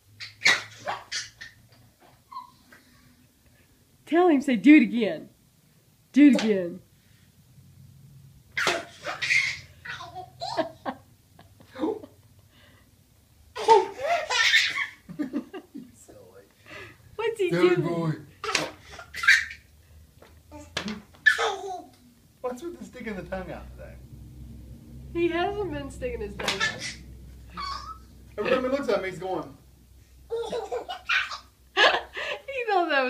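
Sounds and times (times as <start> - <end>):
toddler laughing: 2.2 - 2.9, 8.6 - 11.0, 13.6 - 15.1, 18.4 - 19.7, 20.5 - 22.0, 26.4 - 28.1, 30.3 - 32.3.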